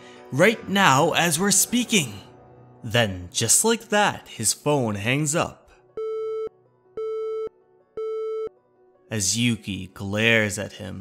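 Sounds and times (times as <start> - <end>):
telephone busy tone beeps: 6.0 - 8.6.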